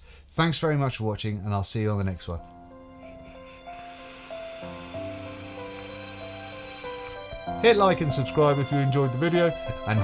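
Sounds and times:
slow background music: 0:02.1 - 0:10.0
faint air hiss through vape: 0:03.3 - 0:07.4.

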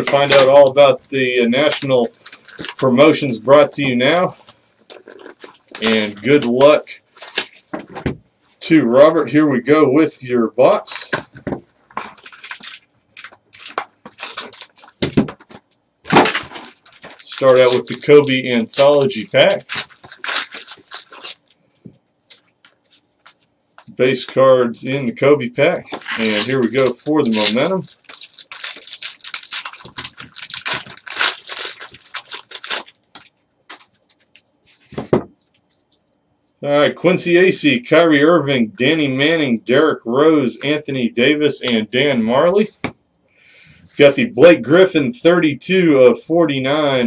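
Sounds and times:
foil pack rustling: 0:00.0 - 0:07.7, 0:12.0 - 0:15.5, 0:16.1 - 0:21.6, 0:25.9 - 0:35.0.

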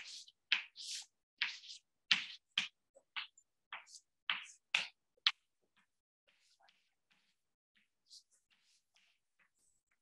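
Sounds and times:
chalk scraping on blackboard: 0:00.0 - 0:02.8.

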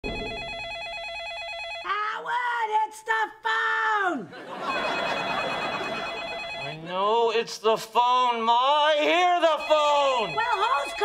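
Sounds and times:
telephone ringing: 0:00.0 - 0:01.9, 0:04.5 - 0:07.0, 0:09.4 - 0:11.0
person speaking: 0:06.6 - 0:11.0.

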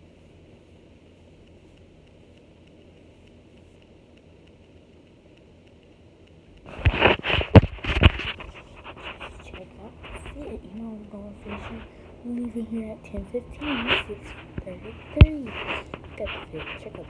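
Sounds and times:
ceiling fan hum: 0:00.0 - 0:17.0.

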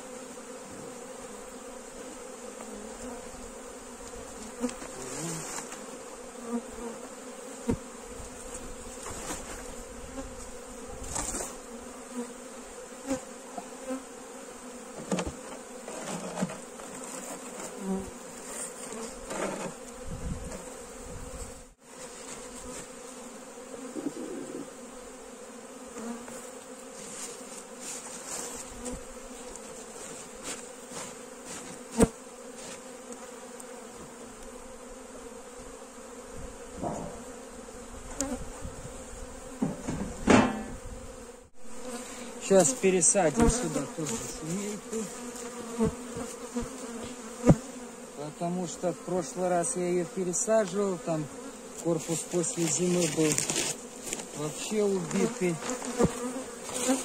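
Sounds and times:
honeybees buzzing: 0:00.0 - 0:57.0
hive boxes knocking and rustling: 0:04.0 - 0:12.2, 0:14.9 - 0:21.4, 0:26.0 - 0:34.2, 0:39.4 - 0:41.1, 0:41.8 - 0:48.0, 0:50.4 - 0:57.0.

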